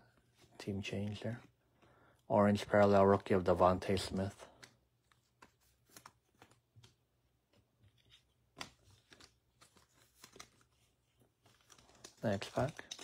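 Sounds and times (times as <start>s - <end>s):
trading cards rustling: 2.6s - 13.0s.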